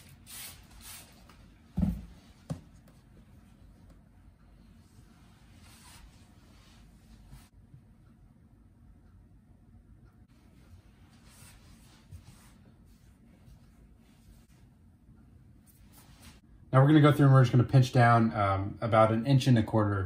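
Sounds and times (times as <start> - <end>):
hands rubbing and shuffling dough: 0.0 - 7.5, 10.4 - 14.8.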